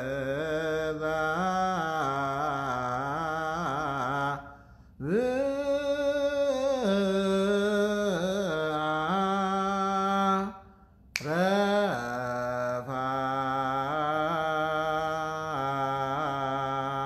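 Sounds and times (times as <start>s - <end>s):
man chanting solo: 0.0s - 10.6s, 11.2s - 17.0s.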